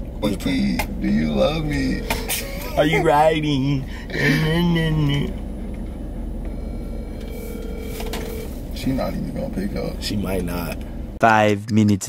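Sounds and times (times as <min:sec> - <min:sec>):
low rumble inside car: 0:00.0 - 0:11.2
phone ringback tone: 0:06.5 - 0:08.6.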